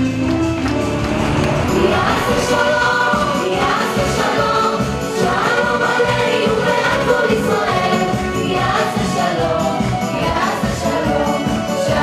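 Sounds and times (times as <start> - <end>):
musical accompaniment: 0.0 - 12.0
group of voices singing: 1.1 - 12.0.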